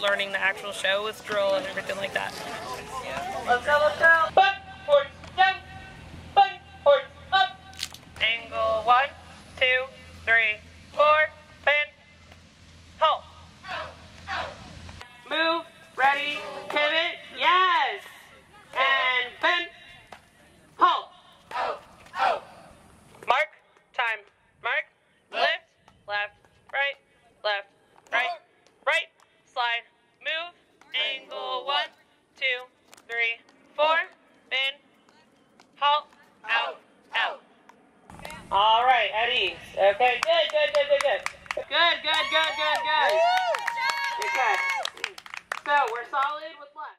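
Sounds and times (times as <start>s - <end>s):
people's voices: 0.0s - 12.0s, 13.0s - 23.4s
person shouting drill counts: 15.2s - 20.0s
group clapping: 40.0s - 46.4s.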